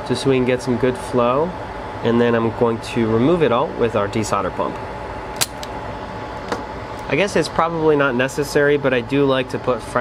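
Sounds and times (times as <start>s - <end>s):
desoldering pump snap: 5.3s - 5.8s.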